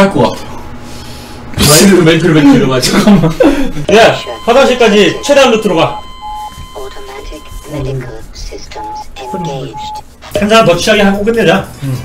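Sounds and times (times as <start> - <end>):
electronic beep: 3.9 - 8.0, 8.8 - 10.5.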